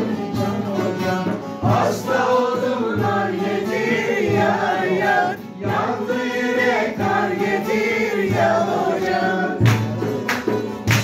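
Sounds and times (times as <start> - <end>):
man singing folk song: 0.0 - 10.8
plucked lute accompaniment: 0.0 - 11.0
handclap: 9.6 - 11.0.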